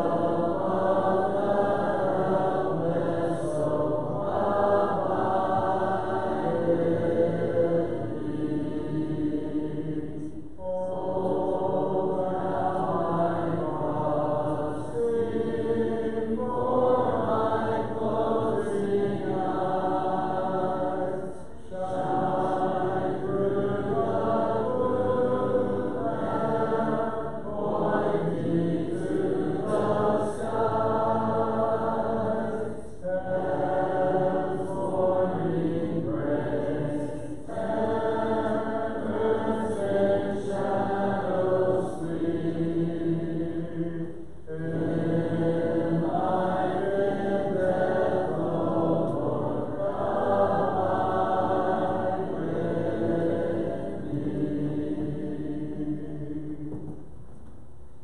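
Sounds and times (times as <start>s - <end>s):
congregation singing a hymn: 0.0s - 57.1s.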